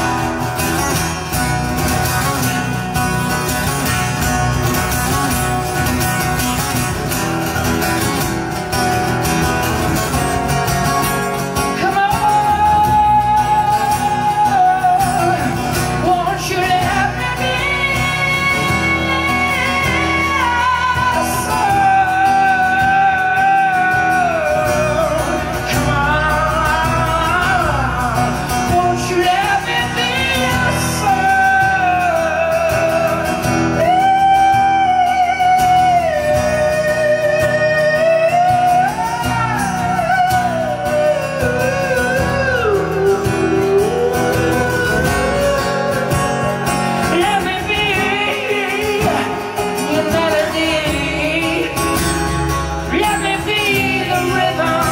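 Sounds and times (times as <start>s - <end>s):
strummed acoustic guitar: 0.0s - 54.9s
man singing long notes: 11.6s - 54.9s.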